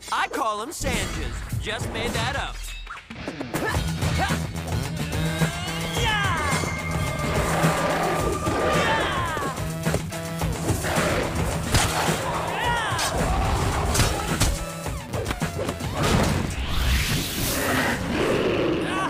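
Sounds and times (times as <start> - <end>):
cartoon fight music: 0.8 - 18.1.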